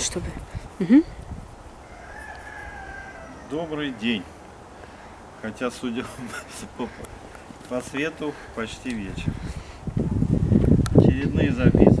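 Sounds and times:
rooster crowing faintly: 0:01.8 - 0:05.0.

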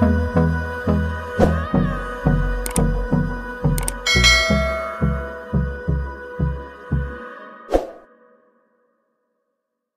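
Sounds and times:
low thud with ringing tones: 0:04.1 - 0:05.5.

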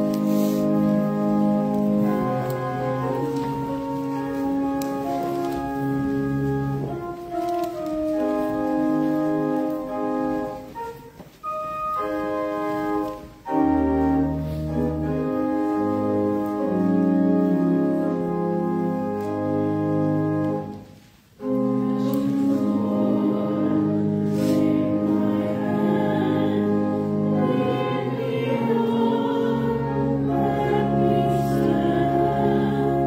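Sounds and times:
congregation singing: 0:00.0 - 0:11.0, 0:21.4 - 0:33.0
church organ chords: 0:00.0 - 0:33.0.

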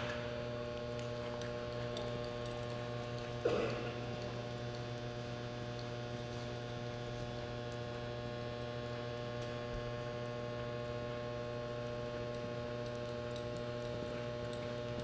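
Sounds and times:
electrical mains hum: 0:00.0 - 0:15.0.

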